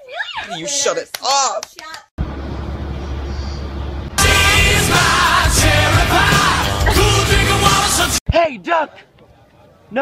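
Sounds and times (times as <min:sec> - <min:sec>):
bus engine rumbling inside cabin: 0:02.2 - 0:05.2.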